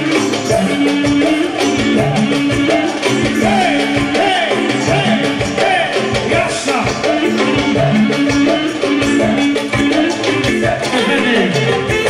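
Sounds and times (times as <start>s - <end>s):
steady drum beat: 0.0s - 12.0s
clarinet melody: 7.0s - 12.0s.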